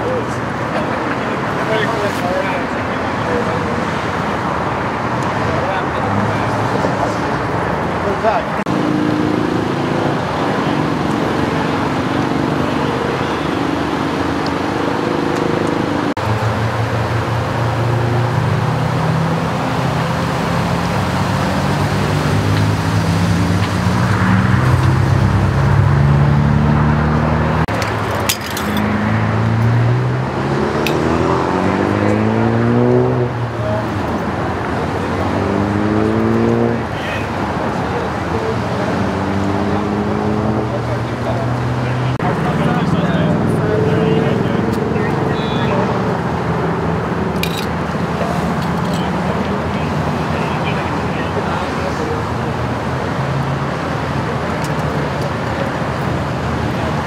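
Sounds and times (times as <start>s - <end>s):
indistinct voices talking: 0.0s - 19.9s, 26.8s - 57.0s
freeway traffic: 0.0s - 57.0s
vehicles idling: 40.6s - 57.0s.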